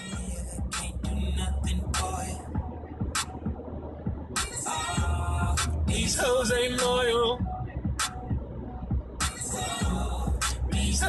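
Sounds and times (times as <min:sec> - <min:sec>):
car road rumble: 0:00.0 - 0:11.0
hip-hop music on car stereo: 0:00.0 - 0:11.0.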